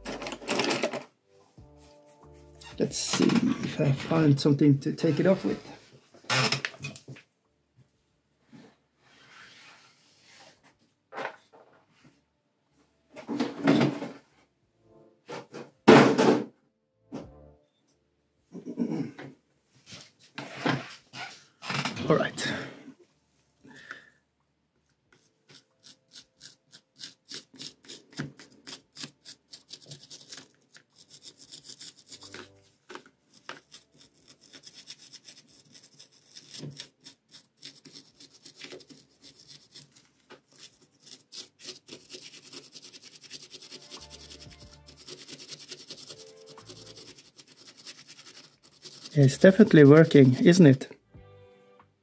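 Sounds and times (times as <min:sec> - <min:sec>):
small brush scrubbing: 0:25.1 - 0:50.8.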